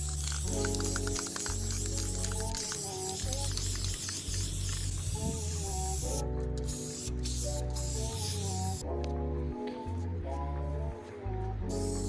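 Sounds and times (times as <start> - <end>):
aerosol spray can hissing: 0.0 - 8.8, 11.7 - 12.0.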